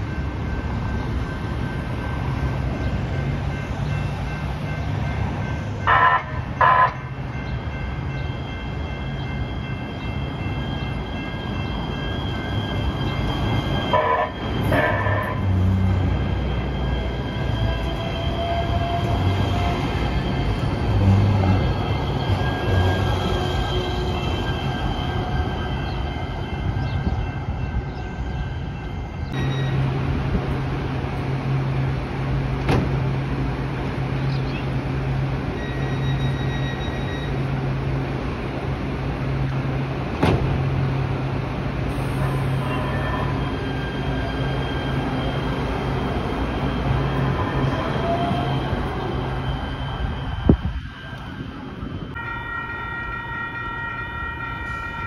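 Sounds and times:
train high whine: 0.0s - 55.0s
train rumble: 0.0s - 55.0s
train horn blasts: 5.8s - 7.1s, 13.9s - 15.9s, 42.0s - 43.7s, 52.2s - 55.0s.

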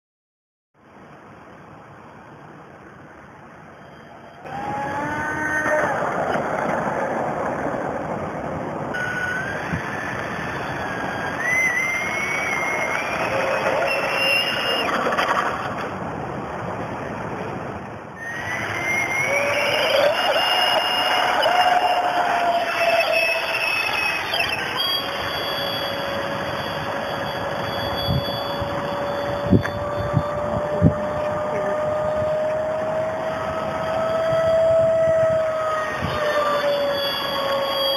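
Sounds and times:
model jet fan whine: 0.8s - 37.9s
rushing air: 0.8s - 37.9s.

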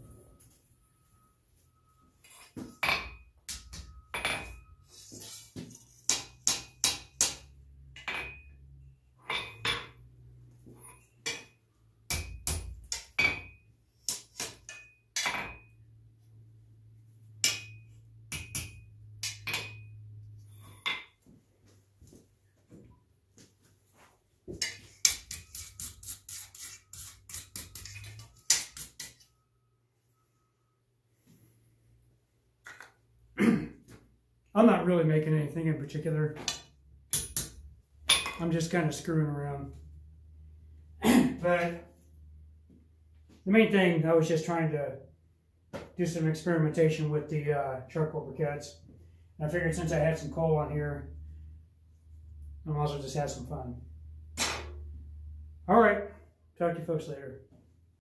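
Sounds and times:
hammer striking steel on anvil: 2.4s - 4.7s, 6.1s - 8.6s, 9.3s - 10.0s, 10.8s - 15.8s, 17.4s - 20.0s, 36.4s - 38.4s.

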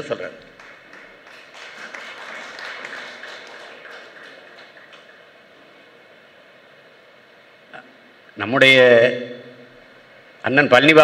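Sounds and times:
audience clapping: 0.4s - 5.5s.

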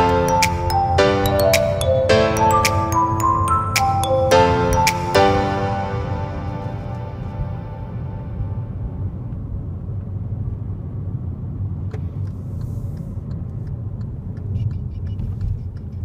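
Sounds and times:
car engine rumble: 5.6s - 16.0s
road noise inside car: 5.7s - 16.0s
turn signal ticking: 11.7s - 16.0s.

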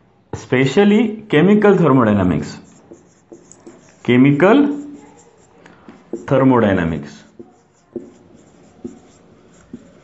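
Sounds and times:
marker writing on whiteboard: 2.4s - 10.0s.

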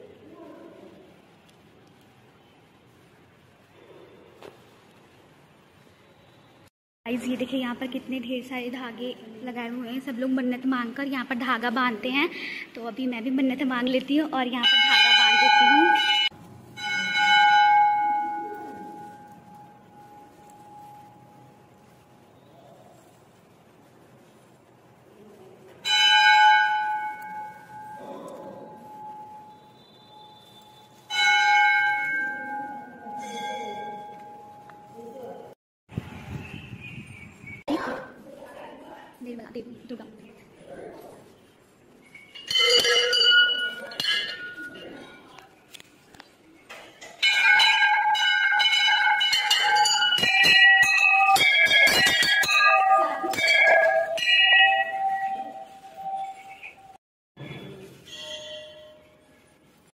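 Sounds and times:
temple bell ringing: 14.6s - 21.6s, 25.8s - 35.1s, 42.4s - 45.2s, 47.2s - 57.0s, 58.1s - 59.1s.

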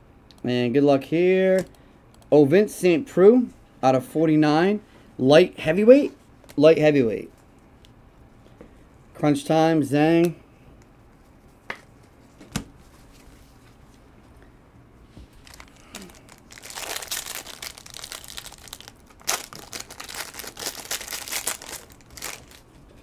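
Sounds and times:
foil wrapper tearing and crinkling: 15.4s - 22.6s.

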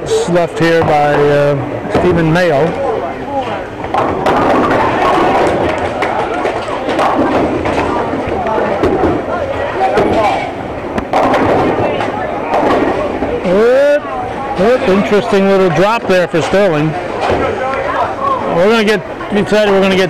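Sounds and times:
people chattering: 0.0s - 20.0s
bowling balls knocking pins: 0.6s - 17.6s.

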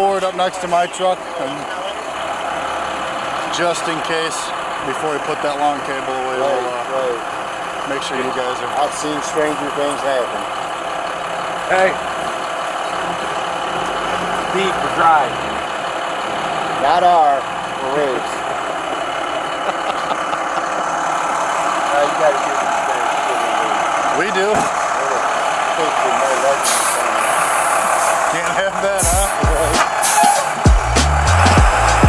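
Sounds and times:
truck engines idling: 0.0s - 32.0s
faint voices: 19.5s - 30.6s
air hiss: 26.6s - 28.3s, 29.0s - 30.6s
man shouting: 29.0s - 30.7s.

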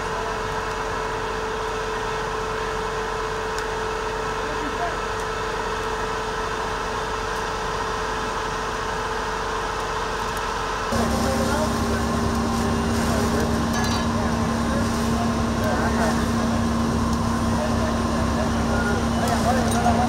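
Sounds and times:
fire engine mechanical hum: 0.0s - 20.0s.

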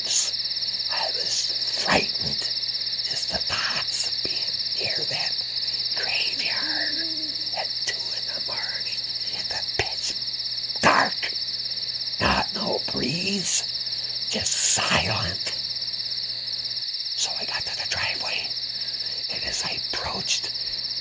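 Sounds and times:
crickets chirping: 0.0s - 21.0s.

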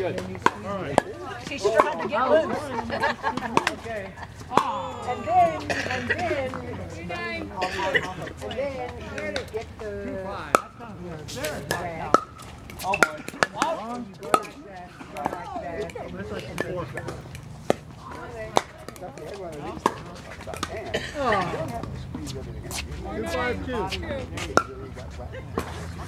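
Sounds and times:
voices talking: 0.0s - 26.0s.

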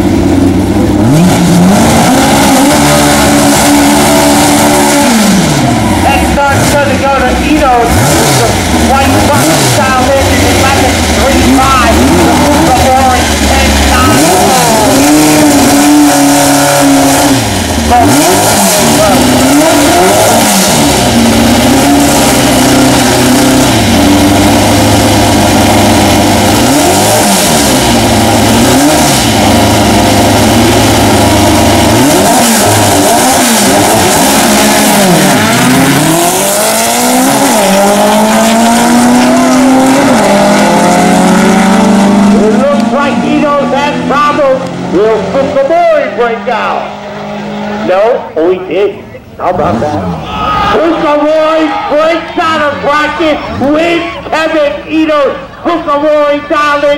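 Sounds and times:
racing car engines revving: 0.0s - 56.9s.

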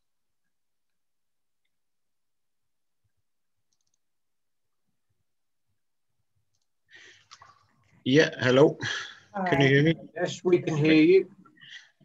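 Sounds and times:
faint clicks: 3.7s - 4.0s.

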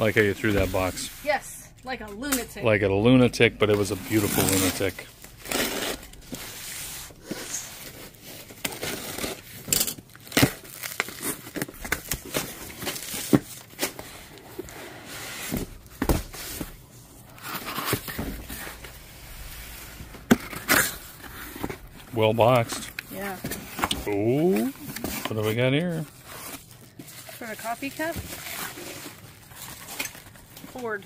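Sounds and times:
cardboard scraping and rustling: 0.0s - 1.4s.

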